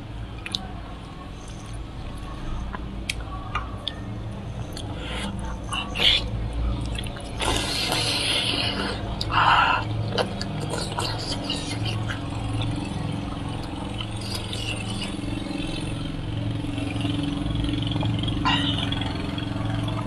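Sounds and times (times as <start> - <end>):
steady low hum: 0.0 - 20.0
soft chewing: 0.4 - 15.9.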